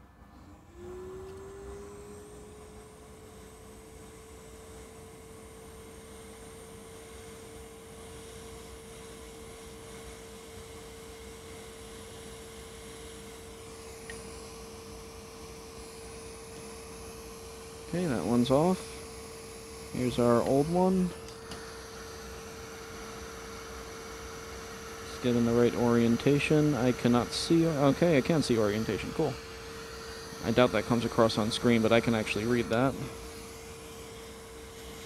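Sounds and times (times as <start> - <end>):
hot-air blower whining: 0.0 - 35.0.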